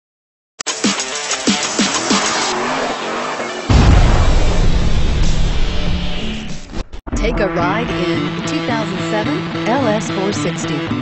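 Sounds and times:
speeding car with tyre noise: 0.7s - 6.9s
electronic music: 0.7s - 9.4s
deep bass hit: 3.7s - 8.0s.

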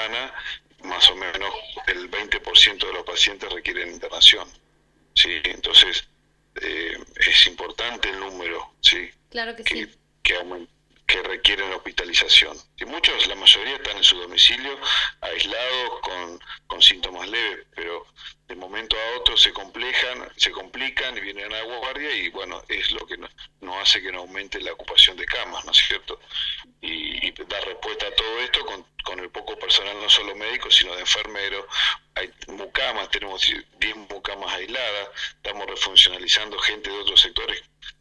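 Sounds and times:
man speaking over telephone: 0.0s - 4.6s, 5.2s - 38.0s.

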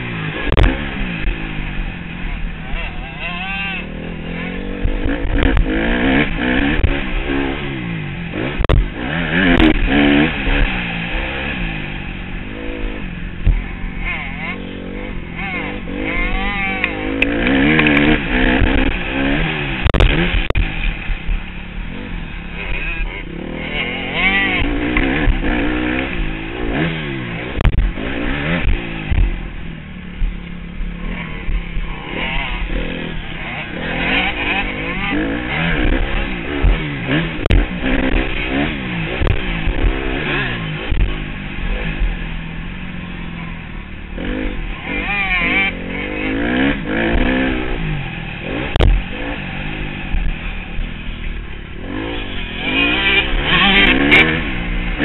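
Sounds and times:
motocross bike engine revving: 0.0s - 55.0s.

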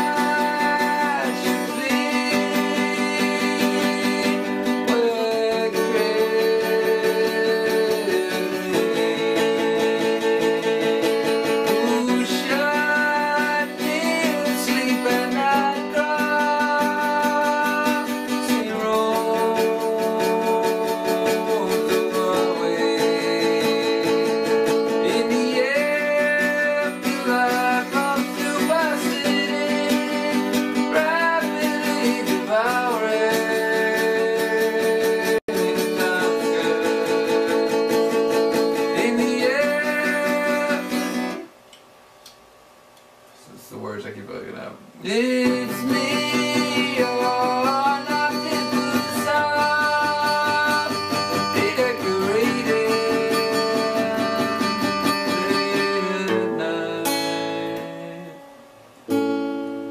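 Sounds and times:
person singing: 0.0s - 41.4s, 45.0s - 58.4s
acoustic guitar chords: 0.0s - 42.5s, 43.3s - 59.9s.

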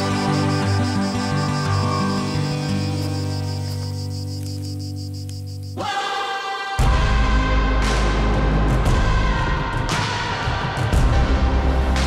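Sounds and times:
fast high pulsing: 0.0s - 5.8s
held low chord: 0.0s - 5.8s.

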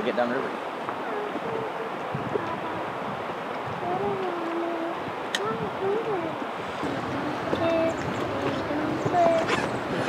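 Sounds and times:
river water rushing: 0.0s - 10.0s
faint voice: 1.0s - 3.0s.

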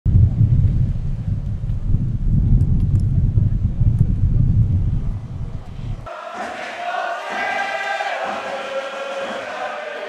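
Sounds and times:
wind buffeting microphone: 0.0s - 6.1s.

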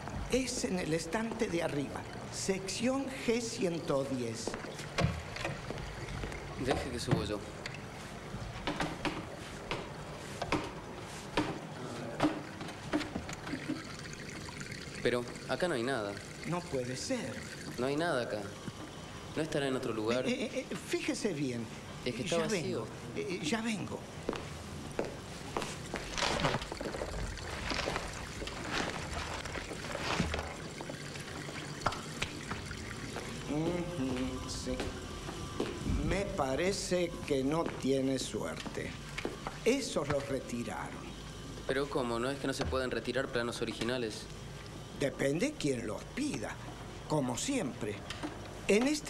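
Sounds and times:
low steady hum: 0.0s - 49.0s
steady low hiss: 0.0s - 49.0s
rustling and scraping of handled objects: 25.6s - 30.6s.

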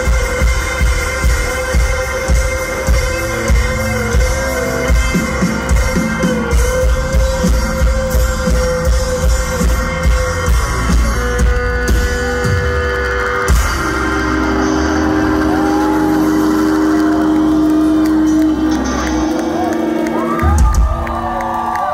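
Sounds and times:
crowd whooping and cheering: 0.0s - 21.9s
rock band playing live: 0.0s - 21.9s.

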